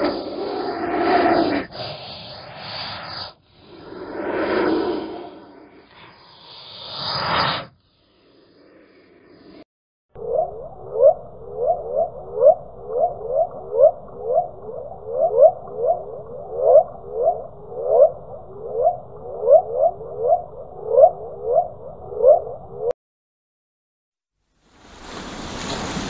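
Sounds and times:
short rising chirping calls: 0:10.2 - 0:22.8.

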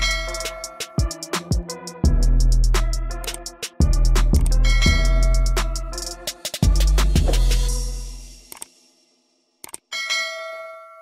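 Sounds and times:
bell chime: 0:00.0 - 0:01.1, 0:04.6 - 0:05.5, 0:09.9 - 0:11.0.

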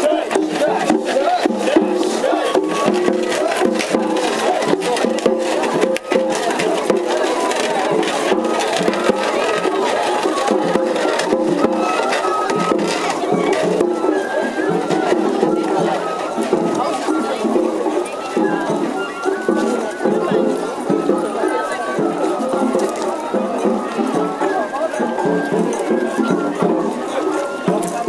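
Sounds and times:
taiko drums: 0:00.0 - 0:28.0.

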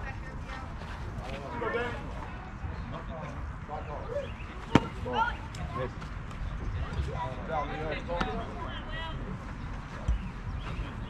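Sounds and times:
baseball hitting catcher's mitt: 0:04.6 - 0:05.0.

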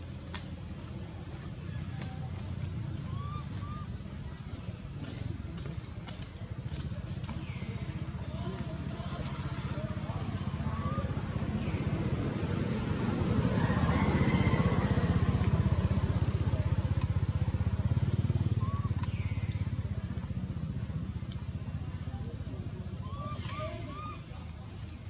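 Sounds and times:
vehicle engine passing: 0:01.3 - 0:23.3.

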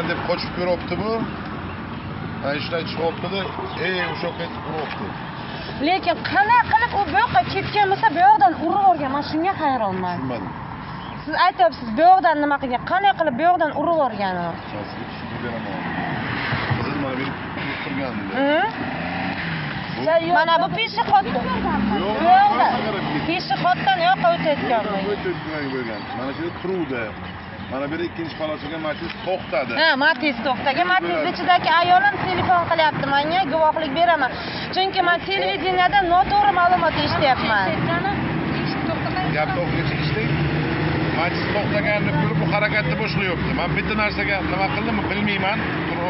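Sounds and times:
background noise: 0:00.0 - 0:46.0
people talking outdoors: 0:00.0 - 0:46.0
people talking: 0:16.8 - 0:18.7, 0:20.0 - 0:27.1, 0:27.7 - 0:40.2.

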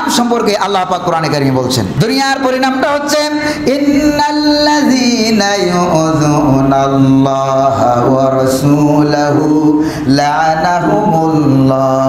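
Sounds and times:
man chanting in sung tone: 0:01.9 - 0:12.0.

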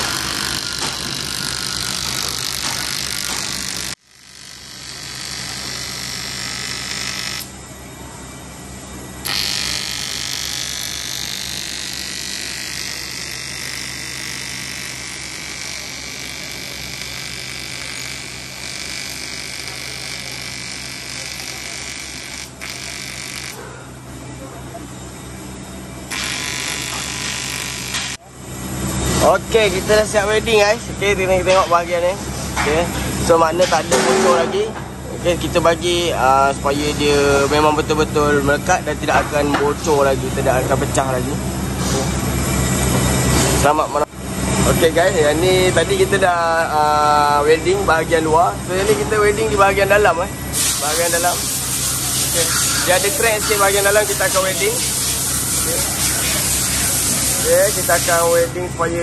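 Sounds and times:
welding arc buzzing with hiss: 0:00.0 - 0:07.6, 0:09.2 - 0:23.6, 0:26.1 - 0:29.9, 0:48.8 - 0:58.6.

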